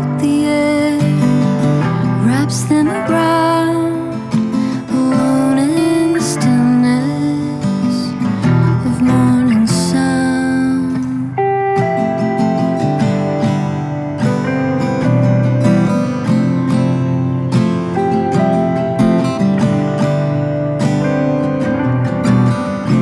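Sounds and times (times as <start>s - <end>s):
acoustic guitar strummed chords: 0.0s - 23.0s
electric guitar sliding melody: 0.0s - 23.0s.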